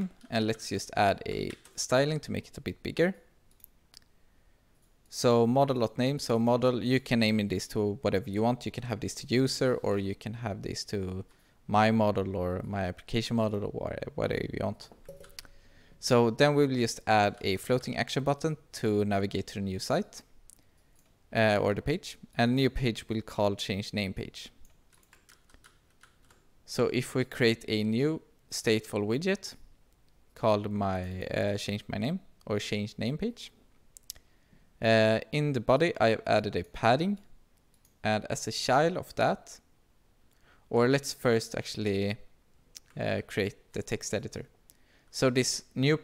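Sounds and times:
person speaking: 0.0s - 4.1s, 5.0s - 20.7s, 21.3s - 25.6s, 30.3s - 34.2s, 34.8s - 37.3s, 37.9s - 39.7s, 40.7s - 46.0s.

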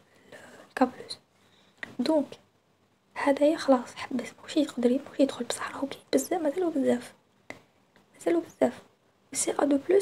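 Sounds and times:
person talking: 0.4s - 1.2s, 1.8s - 2.4s, 3.1s - 7.2s, 8.1s - 10.0s.

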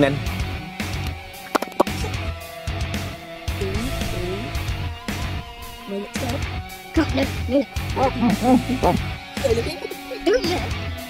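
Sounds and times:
guitar-led music with low beat: 0.0s - 11.0s.

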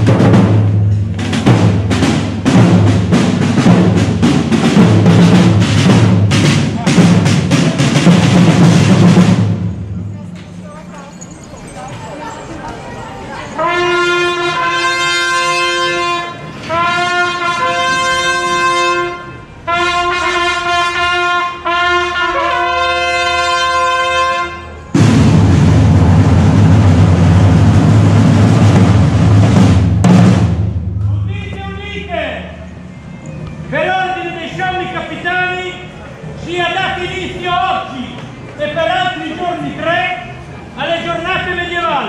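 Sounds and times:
loud field drums: 0.0s - 10.2s, 24.9s - 32.8s
herald trumpet fanfare: 13.6s - 24.9s.

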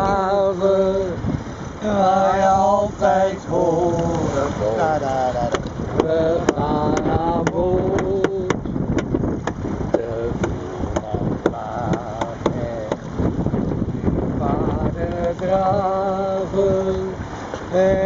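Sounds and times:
men singing unaccompanied: 0.0s - 8.8s, 9.9s - 13.1s, 14.3s - 18.0s
wind rumble on microphone: 0.0s - 18.0s.

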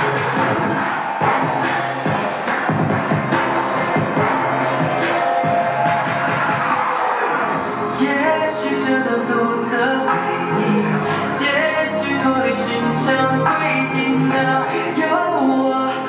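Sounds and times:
instrumental dance music: 0.0s - 16.0s.

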